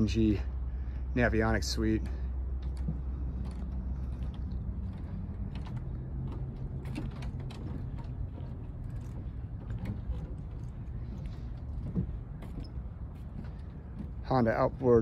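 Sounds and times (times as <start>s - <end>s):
low mechanical hum: 0.0s - 15.0s
light clicks and creaks: 0.9s - 15.0s.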